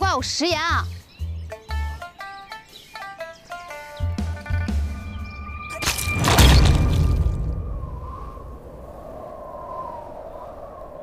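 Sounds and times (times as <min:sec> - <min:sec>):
wavering high drone: 0:04.3 - 0:06.1.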